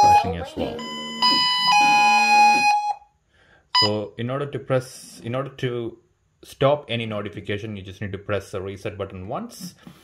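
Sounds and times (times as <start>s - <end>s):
electronic doorbell chime: 0.0s - 2.9s.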